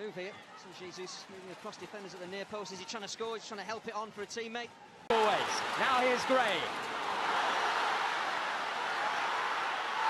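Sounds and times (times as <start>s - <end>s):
stadium crowd roaring: 5.1s - 10.0s.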